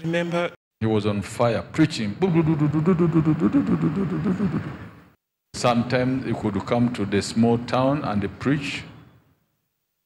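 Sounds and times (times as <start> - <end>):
man's wavering wordless vocal: 2.1 - 4.9.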